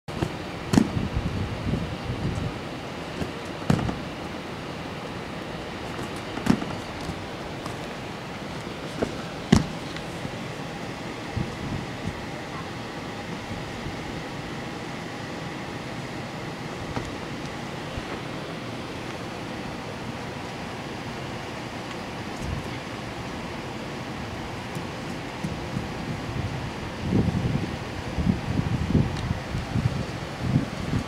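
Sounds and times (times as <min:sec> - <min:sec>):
knocks and thuds of gym equipment: 0:00.2 - 0:01.0, 0:03.2 - 0:04.0, 0:06.4 - 0:06.8, 0:09.0 - 0:09.8.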